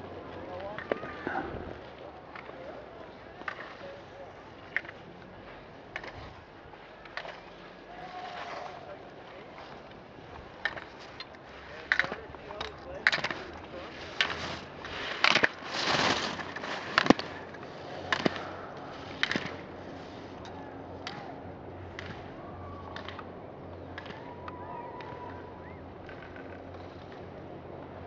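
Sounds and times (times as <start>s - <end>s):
skis scraping on icy snow: 1.8s - 20.5s.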